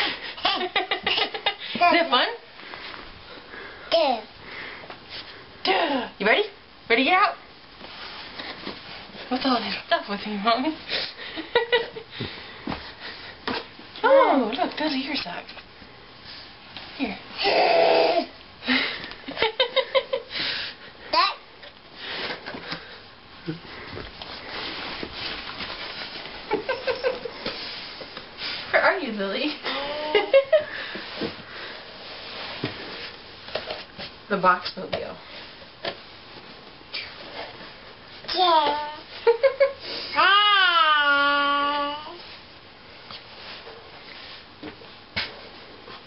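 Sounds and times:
faint breathing and sniffing: 2.5s - 5.6s, 30.6s - 33.2s
baby giggling: 29.7s - 30.4s.

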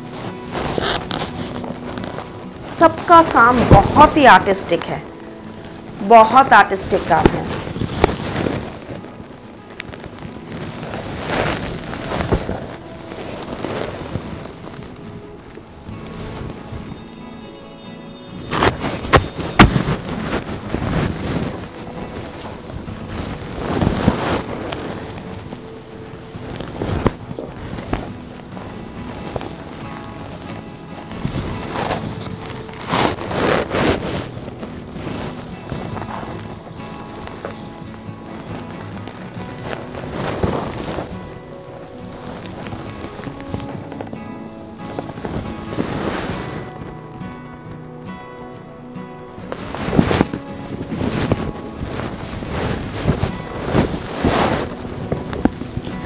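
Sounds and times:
music with held tones: 0.0s - 56.0s
silk fabric rustling: 0.0s - 56.0s.

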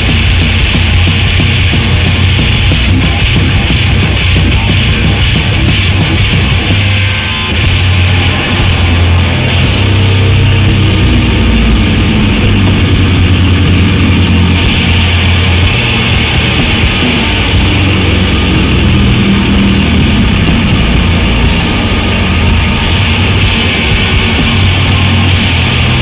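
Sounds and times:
distorted electric guitar: 0.0s - 26.0s
drum kit: 0.0s - 26.0s.

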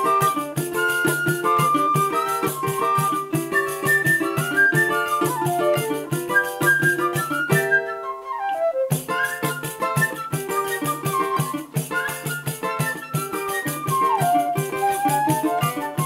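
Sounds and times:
flute melody: 0.0s - 16.0s
small guitar strumming: 0.0s - 16.0s.

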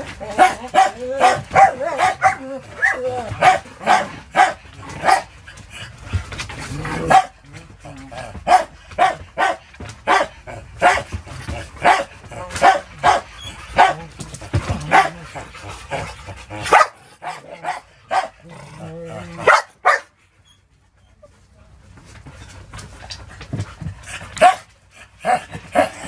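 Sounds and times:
dogs barking in play: 0.0s - 26.0s.

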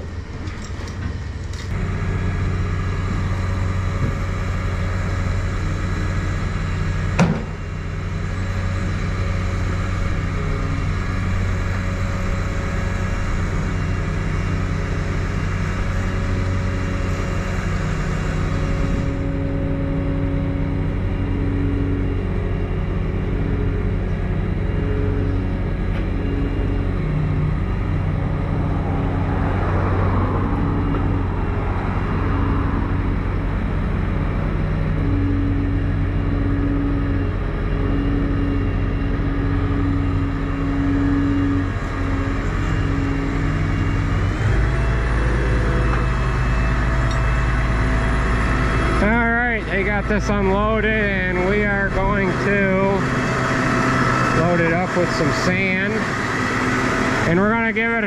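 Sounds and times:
heavy vehicle engine running: 0.0s - 58.0s.

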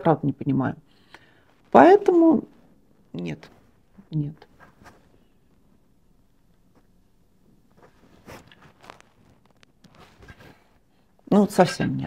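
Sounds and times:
faint rustles: 3.4s - 11.1s.

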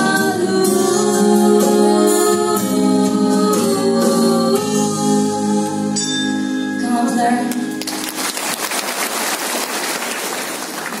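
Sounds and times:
audience applauding: 7.8s - 11.0s.

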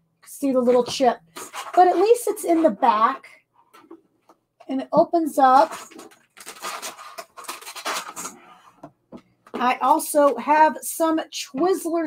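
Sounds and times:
plastic bag rustling: 5.4s - 8.8s.

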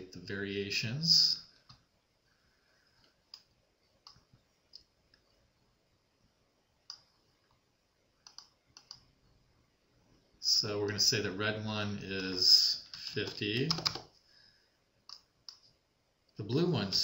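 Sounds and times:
computer mouse clicks: 8.2s - 9.1s, 15.1s - 15.7s.

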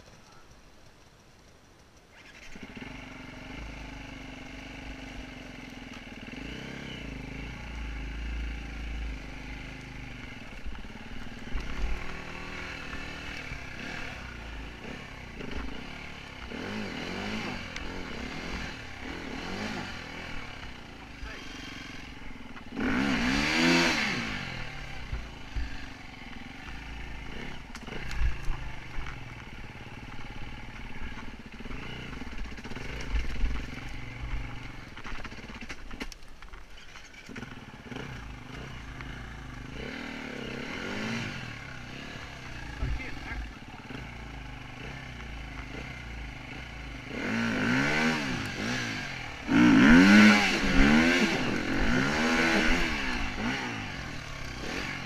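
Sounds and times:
dirt bike engine revving: 2.1s - 36.1s, 36.8s - 55.0s.

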